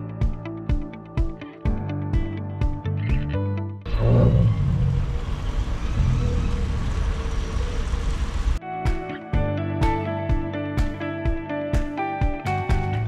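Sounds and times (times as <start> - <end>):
low outdoor rumble: 3.9 - 8.6
acoustic guitar music: 8.6 - 13.0.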